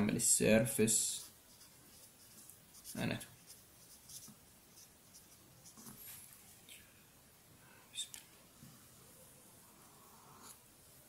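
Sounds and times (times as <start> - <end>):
pen scratching on paper: 1.2 - 6.0.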